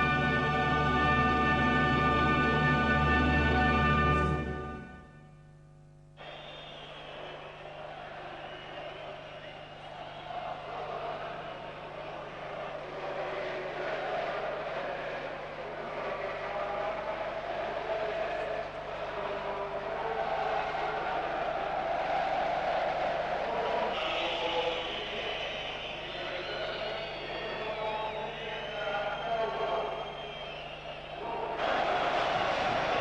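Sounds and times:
crowd chanting and cheering: 0:06.2 - 0:33.0.

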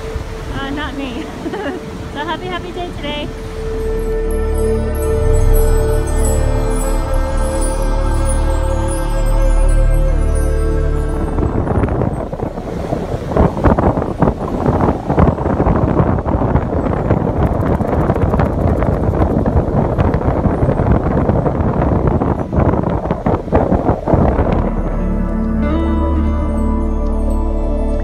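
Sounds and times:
surf washing in: 0:00.0 - 0:26.9
wind buffeting microphone: 0:00.0 - 0:28.0.

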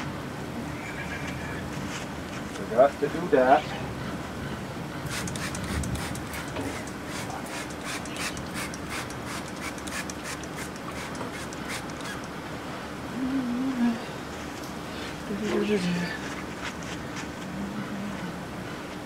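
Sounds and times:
spray bottle spritzing: 0:05.1 - 0:12.3.

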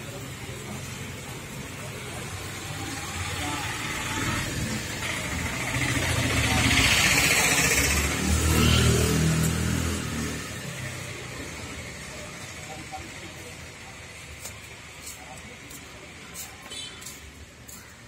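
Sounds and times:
vehicle engine running: 0:00.2 - 0:14.4.

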